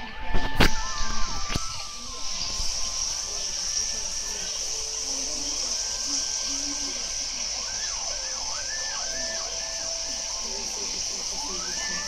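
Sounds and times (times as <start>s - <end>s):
steady high hiss: 0.0s - 12.0s
electronic tones sliding in pitch: 0.9s - 12.0s.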